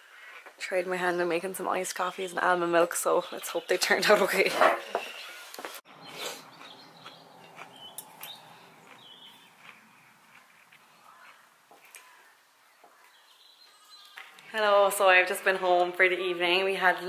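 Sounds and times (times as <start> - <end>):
faint outdoor ambience: 0.0 - 17.0
bird chirps: 5.0 - 14.4.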